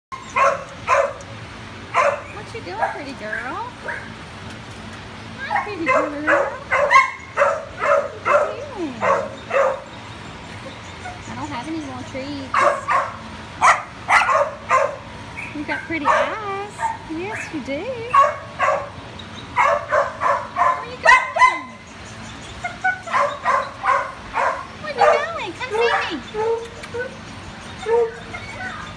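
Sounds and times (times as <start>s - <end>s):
dog barking: 0.2s - 1.2s, 1.9s - 3.0s, 5.5s - 9.9s, 12.5s - 17.0s, 18.1s - 19.0s, 19.6s - 21.8s, 22.9s - 26.1s
dog whining: 27.8s - 28.9s.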